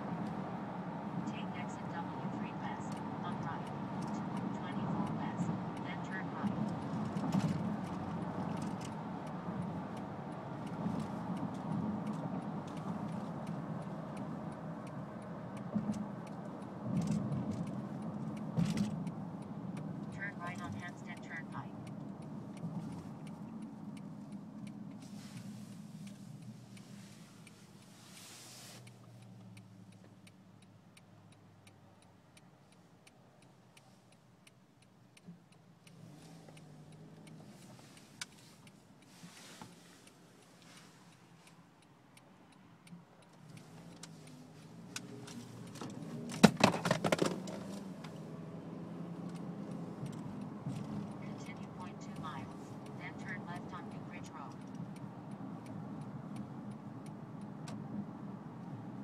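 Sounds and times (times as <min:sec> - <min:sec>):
car engine and road hum: 0:00.0 - 0:59.0
faint regular ticking: 0:00.1 - 0:46.4, 0:47.4 - 0:59.0.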